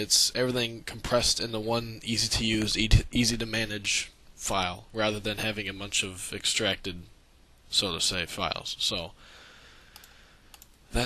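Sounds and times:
faint steady hiss: 0.0s - 11.0s
computer mouse clicking: 9.9s - 10.8s.

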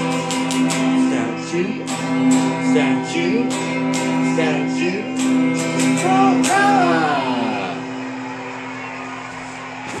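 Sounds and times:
person singing: 0.0s - 8.1s
electric guitar ringing: 0.0s - 9.8s.

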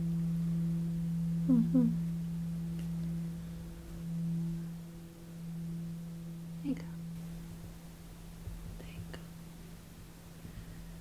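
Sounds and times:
low drone tone: 0.0s - 9.4s.

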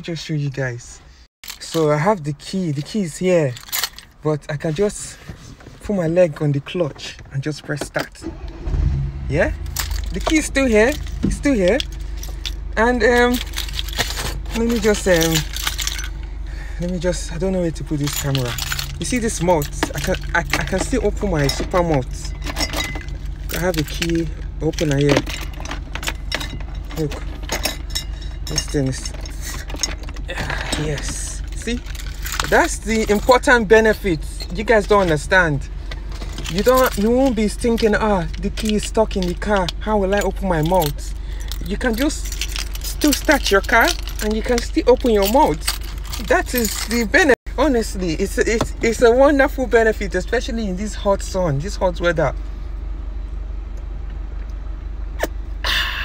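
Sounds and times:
keys jangling and clinking: 1.4s - 4.2s, 9.6s - 49.6s
car engine idling: 1.8s - 56.0s
man exhaling aah: 55.6s - 56.0s.

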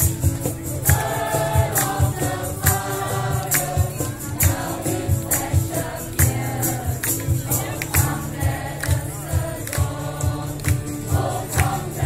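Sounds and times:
choir singing: 0.8s - 12.0s.

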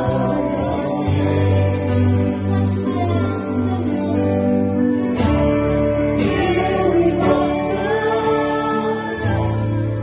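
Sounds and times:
voices singing together: 0.0s - 2.5s, 6.1s - 10.0s
acoustic guitar: 0.0s - 10.0s
electric guitar: 0.0s - 10.0s
keyboard: 0.0s - 10.0s
steady bass: 0.0s - 10.0s.

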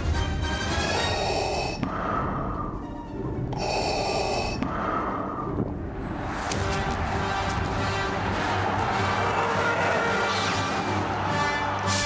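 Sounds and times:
mechanical respirator breathing: 0.9s - 2.8s, 3.5s - 5.6s.

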